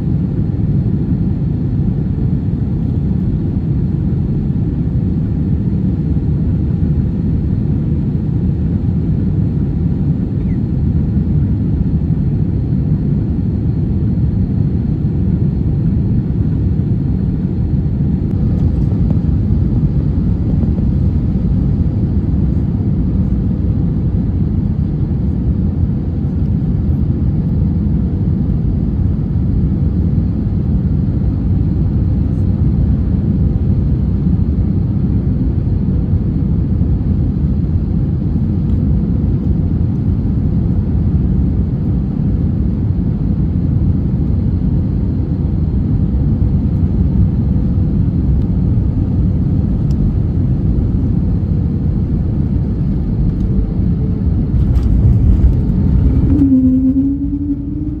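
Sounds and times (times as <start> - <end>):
airliner engine and airflow rumble: 0.0 - 58.0
plane touching down: 1.9 - 27.1, 47.8 - 58.0.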